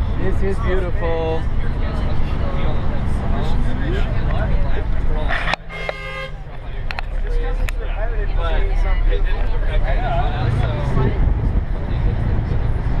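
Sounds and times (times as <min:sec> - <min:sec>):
bus road and engine rumble: 0:00.0 - 0:13.0
vehicle horn toot: 0:05.5 - 0:06.4.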